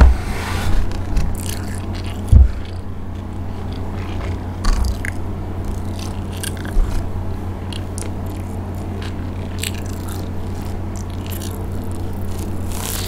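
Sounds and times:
low hum: 0.0 - 13.0
close chewing with crunches: 1.3 - 13.0.

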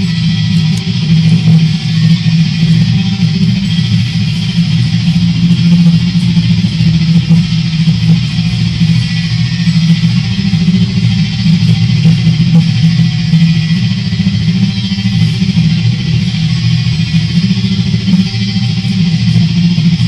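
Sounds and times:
heavy metal band playing: 0.0 - 20.0.

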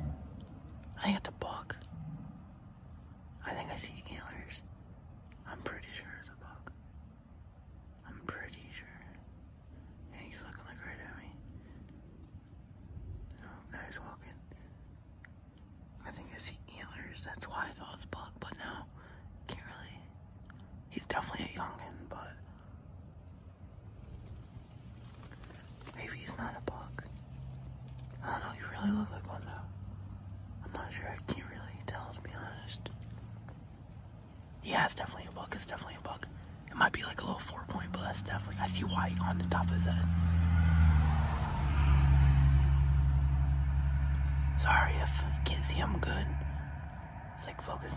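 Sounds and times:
low background rumble: 0.0 - 47.9
man whispering: 0.4 - 1.9, 3.4 - 4.8, 5.4 - 6.9, 8.0 - 9.3, 10.1 - 11.6, 13.3 - 14.6, 16.0 - 20.3, 20.9 - 22.6, 25.1 - 33.7, 34.4 - 40.1, 44.4 - 47.9.

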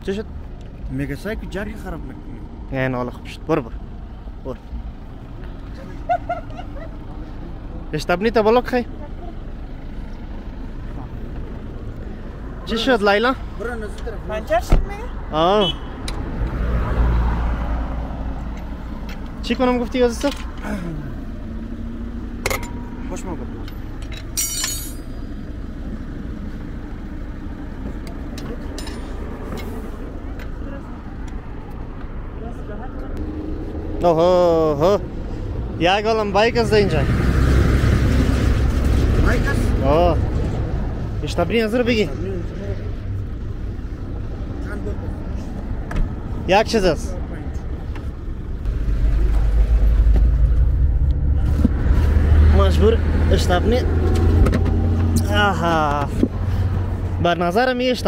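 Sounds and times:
roadside vehicle rumble: 0.0 - 58.0
metallic clatter: 23.6 - 25.3.

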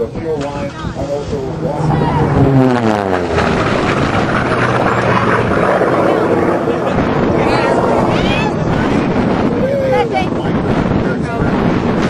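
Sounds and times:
propeller plane engine passing overhead: 0.0 - 12.0.

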